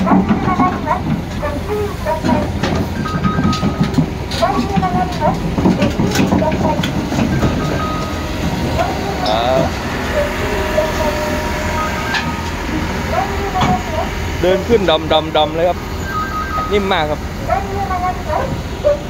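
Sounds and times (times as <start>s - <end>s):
excavator engine under load: 0.0s - 19.0s
steel tracks clanking on ramps: 0.0s - 19.0s.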